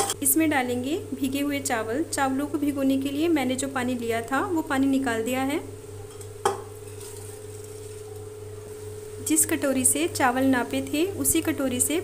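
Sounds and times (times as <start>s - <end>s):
steady low hum: 0.0s - 12.0s
metal bowl knocking on pot: 6.1s - 6.8s.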